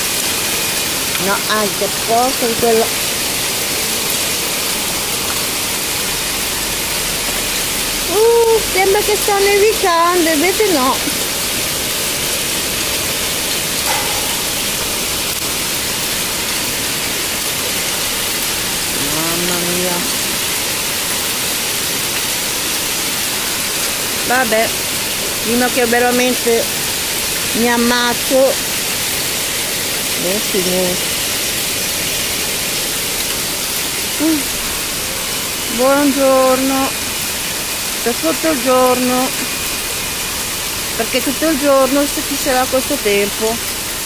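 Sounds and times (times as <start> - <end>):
rain and hail falling: 0.0 - 44.0.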